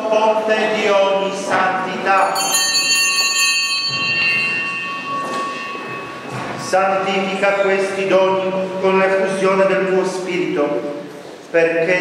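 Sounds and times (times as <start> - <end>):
altar bells ringing: 2.0 - 8.4.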